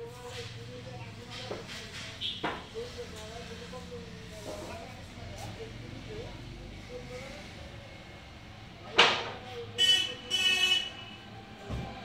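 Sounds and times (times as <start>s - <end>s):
vehicle horn toots: 9.8s - 11.2s.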